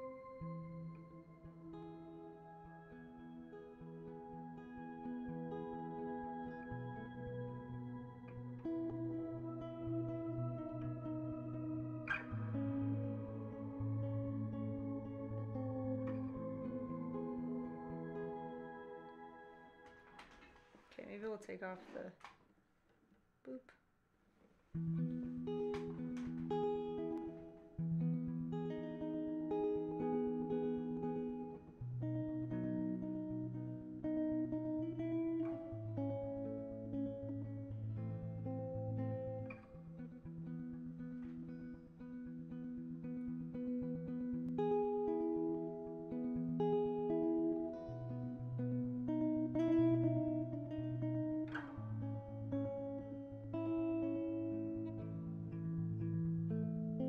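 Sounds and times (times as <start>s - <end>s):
electric guitar notes: 0.0s - 20.7s, 24.8s - 57.0s.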